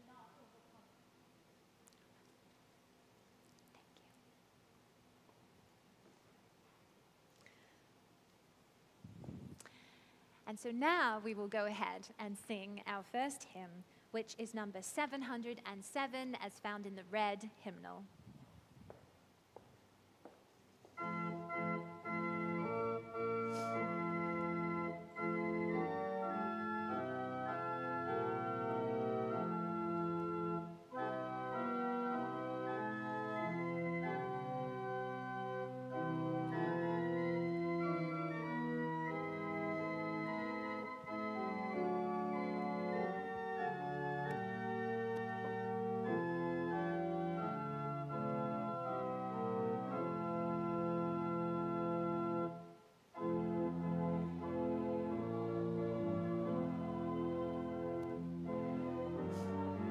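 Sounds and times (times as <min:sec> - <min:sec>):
church organ playing hymn chords: 0:21.0 - 0:59.9.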